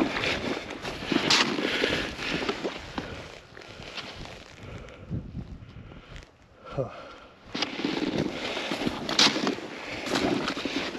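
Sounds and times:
footsteps crunching in snow: 0.0 - 6.4, 7.5 - 10.9
wind noise on microphone: 0.0 - 6.6.

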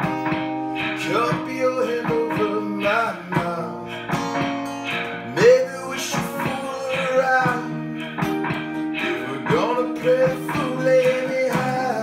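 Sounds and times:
acoustic guitar strumming: 0.0 - 12.0
sustained looped parts: 0.0 - 12.0
man singing wordless notes: 0.9 - 4.0, 5.2 - 8.2, 8.8 - 12.0.

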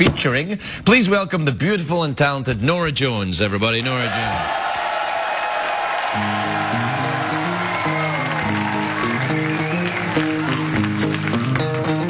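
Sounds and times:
audience applauding: 4.1 - 12.0
band playing: 6.2 - 12.0.

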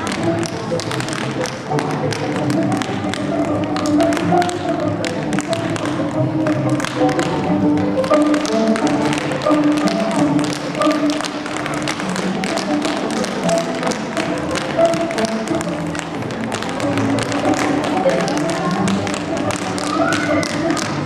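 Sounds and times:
recorded music with melody: 0.0 - 21.0
tap shoes on wooden stage: 0.0 - 21.0.

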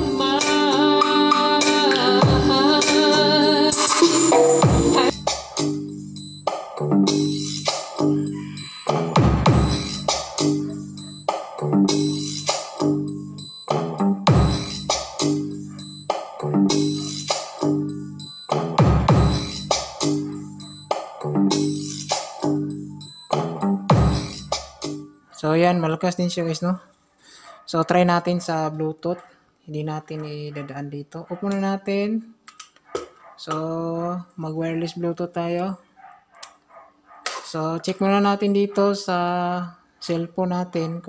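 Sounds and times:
music with drum beat and bass: 0.0 - 25.0.

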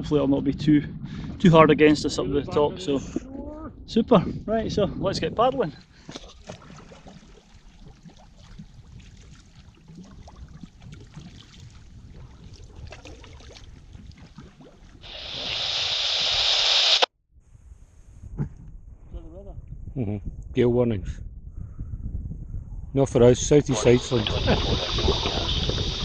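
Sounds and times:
water lapping around hull: 5.8 - 15.5, 23.7 - 26.0
kayak paddles dipping: 6.0 - 15.9, 23.7 - 26.0
loud rushing hiss: 15.0 - 17.1, 23.8 - 26.0.

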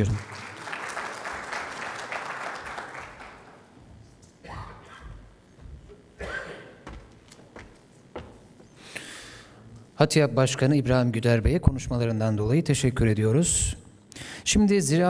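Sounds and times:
audience applauding: 0.0 - 3.8.

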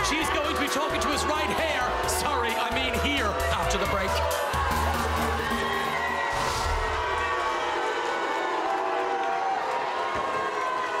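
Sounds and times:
loud music with heavy bass: 0.0 - 7.0
audience cheering and screaming: 0.0 - 11.0.

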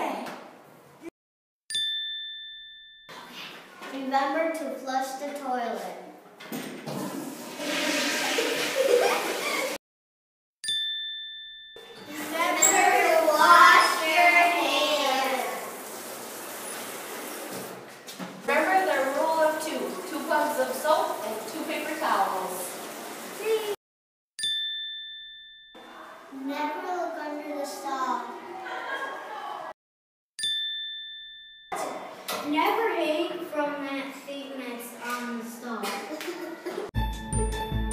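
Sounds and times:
bright chime: 1.7 - 3.5, 10.6 - 13.0
toilet flushing: 6.8 - 9.8, 14.6 - 17.9, 18.5 - 23.8.

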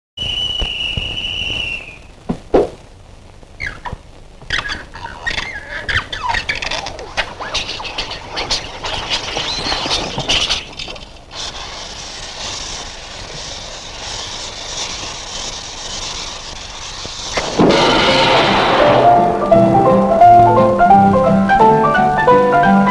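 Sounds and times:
high whistle: 0.2 - 2.1
steady fuse hiss: 0.2 - 22.9
crackling and squealing glides: 3.5 - 20.7
music: 17.6 - 22.9.

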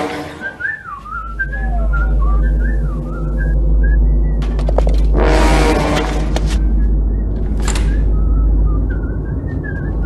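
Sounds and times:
person whistling a tune: 0.4 - 4.4, 6.8 - 10.0
steady low hum: 0.6 - 10.0.

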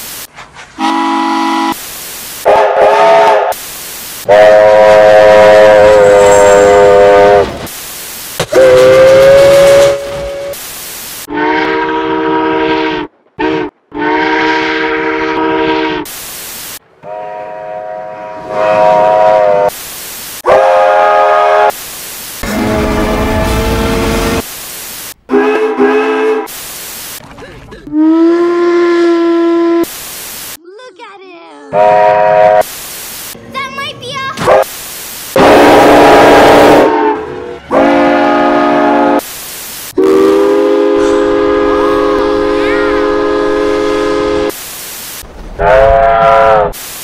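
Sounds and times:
steam locomotive whistle blasts: 0.8 - 1.8, 2.4 - 3.6, 4.2 - 7.6, 8.4 - 10.6, 11.3 - 16.1, 17.0 - 19.7, 20.4 - 21.8, 22.4 - 24.4, 25.3 - 26.5, 27.9 - 29.9, 31.8 - 32.7, 35.4 - 39.2, 40.0 - 44.6, 45.6 - 46.8.

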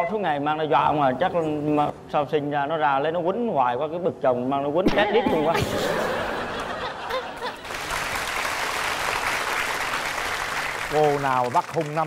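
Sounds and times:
audience applauding: 7.3 - 12.0.

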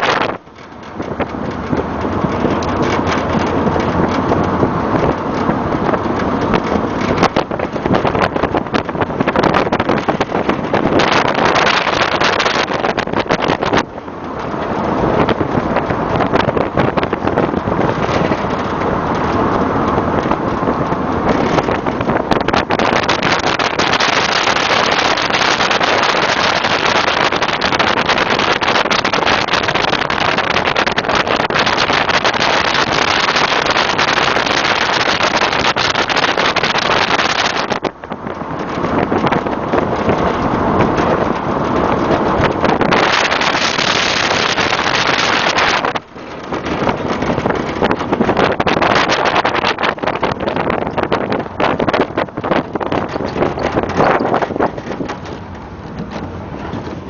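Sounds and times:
road noise: 0.0 - 57.0
wind buffeting microphone: 0.0 - 57.0.

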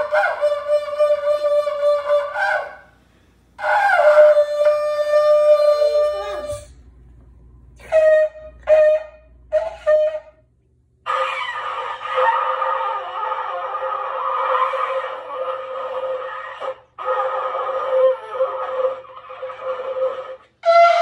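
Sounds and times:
shofar notes: 0.0 - 3.0, 3.6 - 7.0, 7.7 - 10.4, 11.0 - 21.0.

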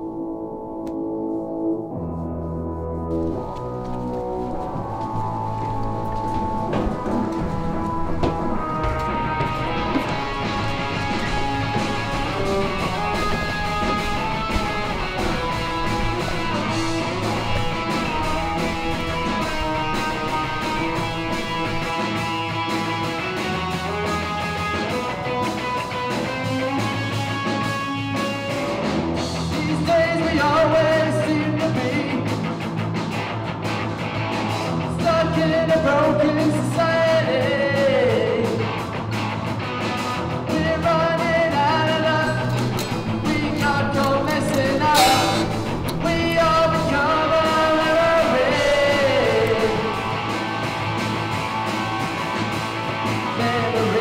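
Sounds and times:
rock music with guitar and drums: 0.0 - 54.0.

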